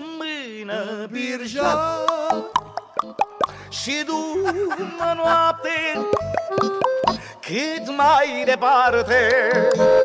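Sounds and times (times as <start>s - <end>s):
person singing: 0.0s - 10.0s
tongue clicks: 2.0s - 3.6s, 6.1s - 7.2s.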